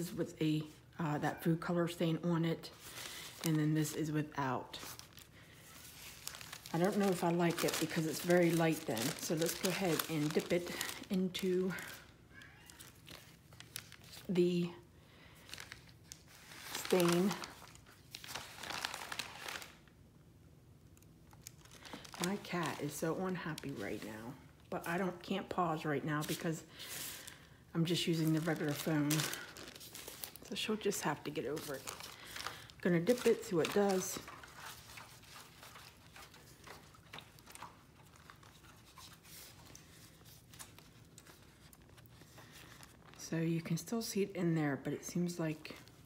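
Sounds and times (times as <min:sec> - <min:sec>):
baking paper crinkling: 0:02.6 - 0:14.7, 0:15.4 - 0:19.9, 0:21.0 - 0:43.7.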